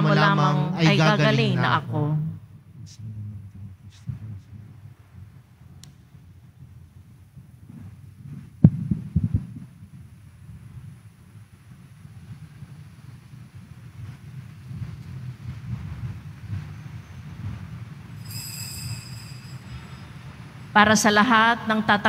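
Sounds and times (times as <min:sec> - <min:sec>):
low rumble of church room sound: 0:00.0 - 0:22.0
high ringing tone: 0:18.1 - 0:21.0.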